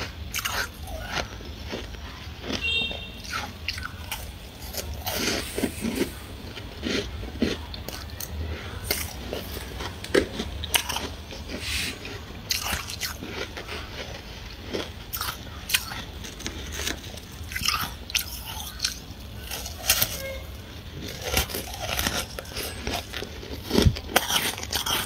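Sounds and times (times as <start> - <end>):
frost being chewed: 0.0 - 25.0.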